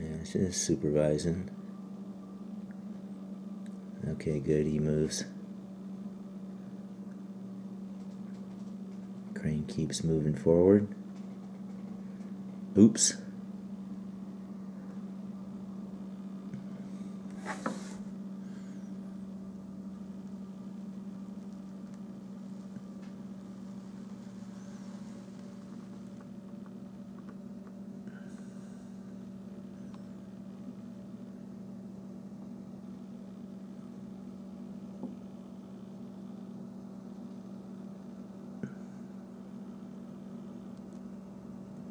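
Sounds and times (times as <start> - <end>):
low room tone hum: 0.0 - 41.9.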